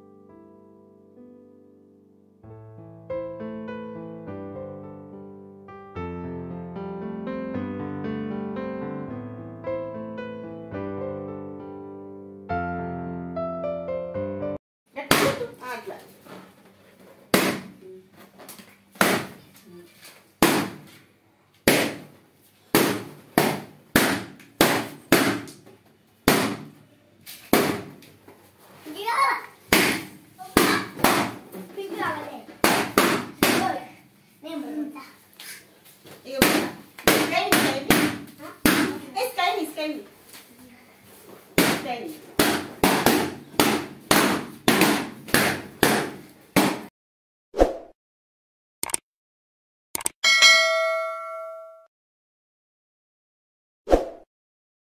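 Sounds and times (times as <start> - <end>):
balloons popping: 15.0 - 15.6, 17.3 - 17.8, 18.9 - 19.4, 20.4 - 21.0, 21.6 - 22.1, 22.7 - 25.6, 26.2 - 26.8, 27.4 - 28.0, 29.7 - 31.4, 32.6 - 33.8, 36.3 - 39.4, 41.6 - 46.9.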